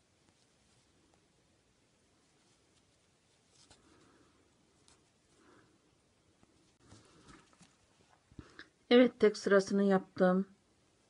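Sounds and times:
crochet hook handling yarn: 2.0s - 5.7s.

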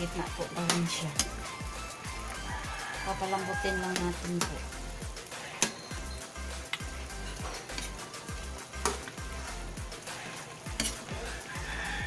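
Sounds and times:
sauce sizzling: 0.0s - 12.0s
spatula scraping a wok: 0.4s - 12.0s
spatula clanking against pan: 5.5s - 6.0s, 6.7s - 8.0s, 8.8s - 9.2s, 10.7s - 11.2s.

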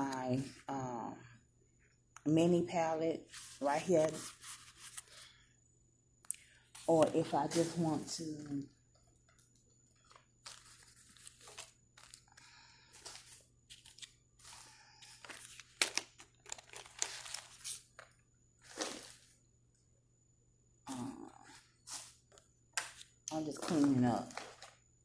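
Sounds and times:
rustling and crackling handling noise: 6.7s - 19.3s, 21.9s - 24.8s.

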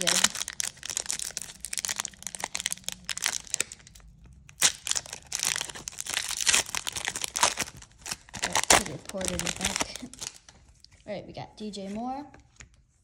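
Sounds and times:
foil wrapper tearing and crinkling: 0.0s - 10.6s.

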